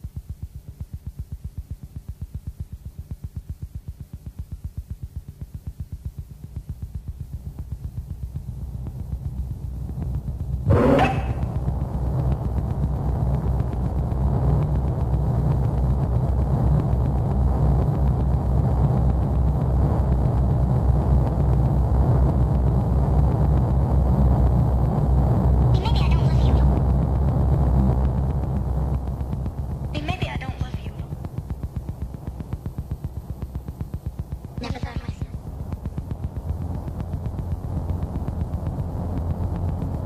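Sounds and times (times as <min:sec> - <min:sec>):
low pulsing throb: 0:00.0 - 0:40.0
low rumbling drone: 0:06.6 - 0:40.0
loud sweeping hit: 0:10.7 - 0:11.6.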